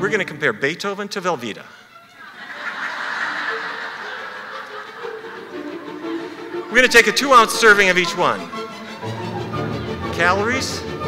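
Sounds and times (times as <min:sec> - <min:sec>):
audience laughing: 0:02.2 - 0:06.7.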